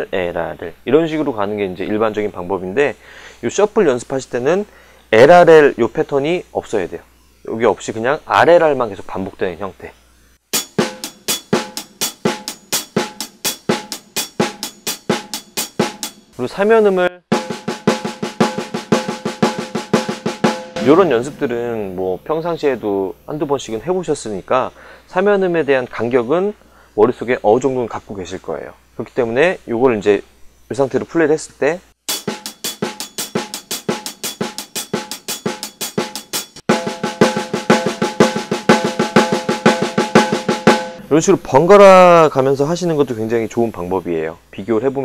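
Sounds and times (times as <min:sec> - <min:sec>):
snare drum strokes: 0:10.5 - 0:16.2, 0:17.3 - 0:22.3, 0:32.1 - 0:41.8.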